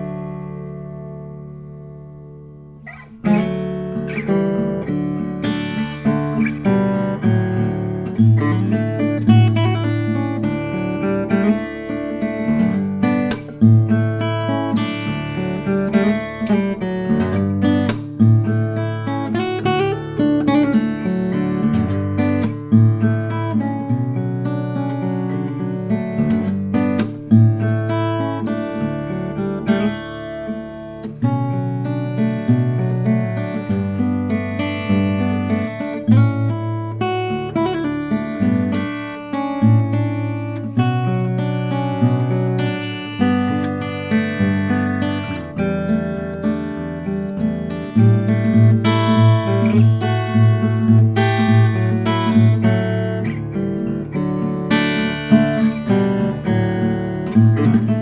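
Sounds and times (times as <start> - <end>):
acoustic guitar fingerpicked melody: 0.0 - 58.0.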